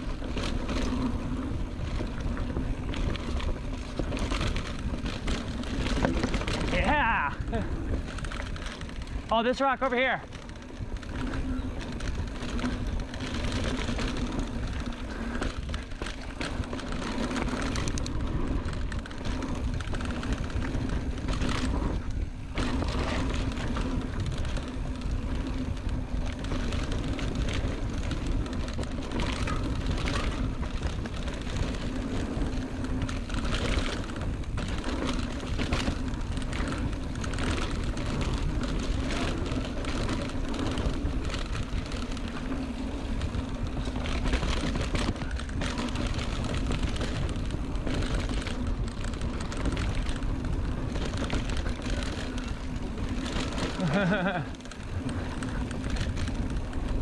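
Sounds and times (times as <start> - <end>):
bike clicks and rattles: 0.0 - 57.0
bike tyres on dirt: 0.0 - 57.0
wind rumbling on microphone: 0.0 - 57.0.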